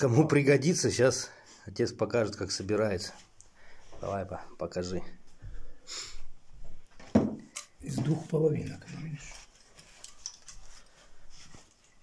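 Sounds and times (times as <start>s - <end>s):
faint handling rustles and ticks: 7.6s - 12.0s.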